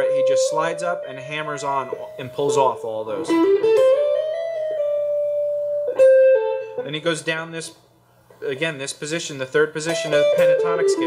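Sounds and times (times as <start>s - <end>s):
person speaking: 0.0s - 3.4s, 8.4s - 11.0s
electric guitar playing: 0.0s - 7.0s, 9.9s - 11.0s.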